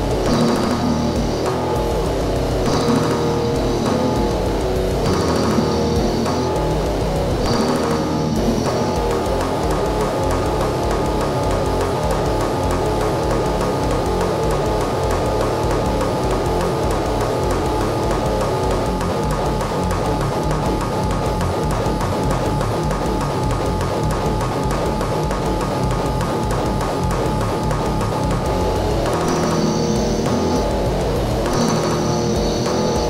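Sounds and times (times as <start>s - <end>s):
heavy metal music: 0.0s - 33.0s.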